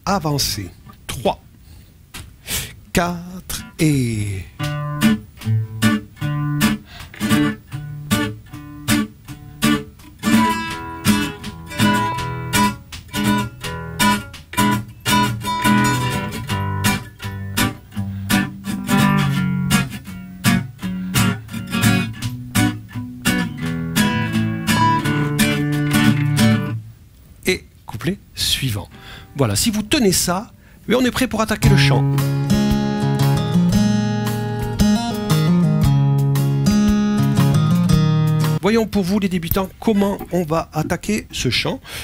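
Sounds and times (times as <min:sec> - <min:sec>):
classical guitar strumming: 0:03.5 - 0:26.8, 0:31.6 - 0:38.6.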